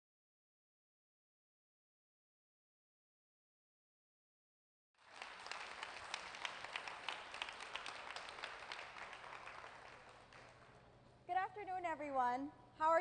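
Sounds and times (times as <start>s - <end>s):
audience applauding: 5.0s - 10.9s.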